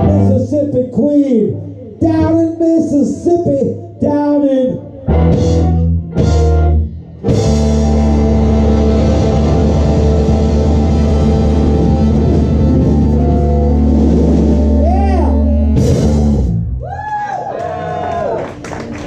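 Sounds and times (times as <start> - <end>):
electric guitar: 0.0 - 0.8, 3.0 - 19.0
electric bass: 0.0 - 17.3
drum kit: 5.1 - 17.0
saxophone: 7.4 - 15.8.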